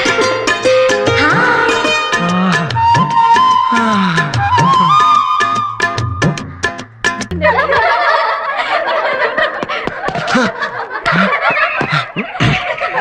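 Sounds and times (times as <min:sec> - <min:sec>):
song with drum beats: 0:00.0 - 0:07.8
group of people laughing: 0:07.3 - 0:13.0.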